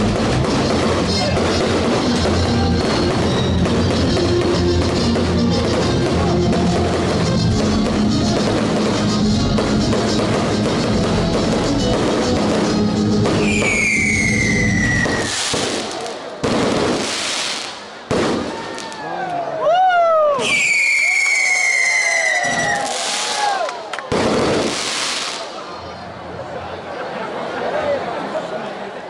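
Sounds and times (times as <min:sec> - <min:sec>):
firework bangs and crackle: 0:00.0 - 0:19.0, 0:20.4 - 0:25.8
whistling rockets: 0:00.0 - 0:19.1, 0:20.4 - 0:25.8.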